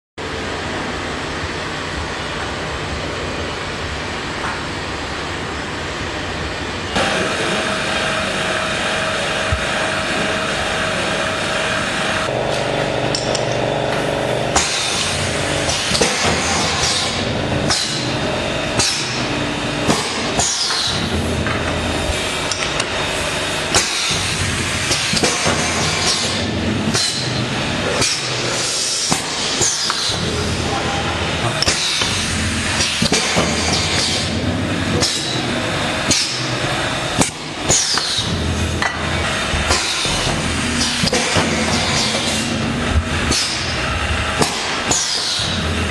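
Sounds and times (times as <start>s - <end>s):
machine mechanical hum: 0.2s - 45.9s
machine clanks and clinks: 12.5s - 13.7s, 14.5s - 18.2s, 18.8s - 21.8s, 23.7s - 42.6s, 43.3s - 45.7s.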